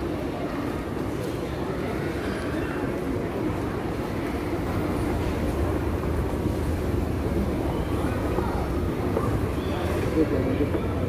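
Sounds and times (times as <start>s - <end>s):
faint murmur of voices: 0.0s - 11.0s.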